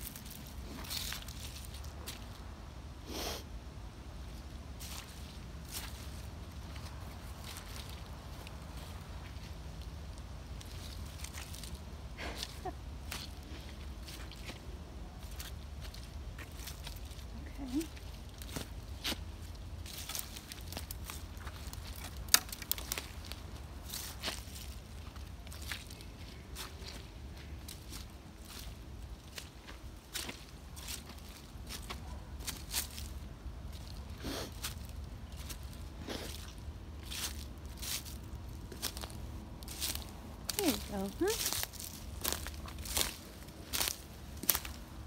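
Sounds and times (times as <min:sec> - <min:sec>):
footsteps crunching dry leaves: 0:00.0 - 0:03.4, 0:04.2 - 0:45.0
twig snapping: 0:21.6 - 0:23.4.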